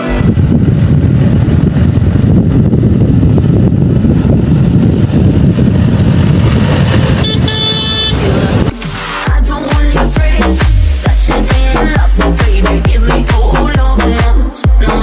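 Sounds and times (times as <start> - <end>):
tractor engine rumbling: 0.0 - 10.2.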